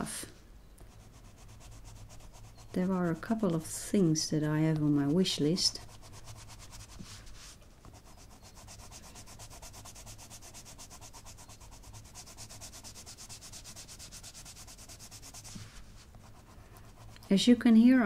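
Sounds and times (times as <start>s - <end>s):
coloured pencil rubbing on paper: 0.9s - 3.7s, 4.6s - 17.9s.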